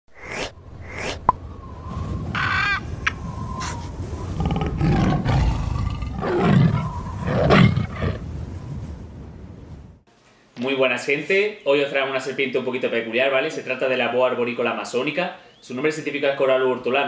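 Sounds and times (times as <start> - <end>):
trilling animal call: 2.3 - 3.8
big cat roaring: 4.3 - 8.2.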